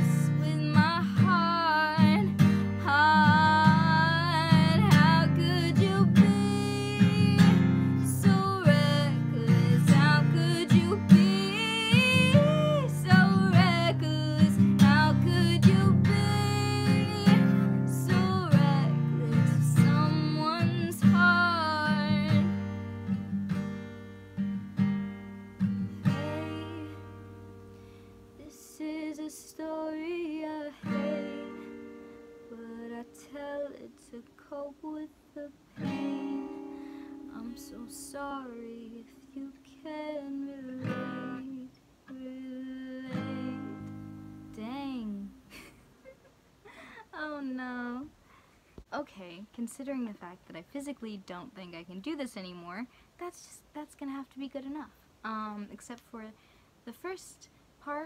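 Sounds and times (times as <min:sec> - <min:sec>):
woman singing a pop ballad: 0:00.0 - 0:22.6, 0:26.0 - 0:27.2, 0:28.4 - 0:31.8, 0:32.5 - 0:45.4
plucked guitar notes: 0:00.0 - 0:24.0
acoustic guitar strumming: 0:00.0 - 0:29.5, 0:30.8 - 0:33.5, 0:35.8 - 0:45.4.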